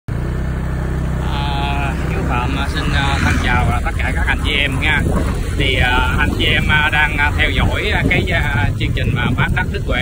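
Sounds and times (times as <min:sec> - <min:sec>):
motor scooter engine running: 0:00.1 - 0:10.0
person talking: 0:01.2 - 0:10.0.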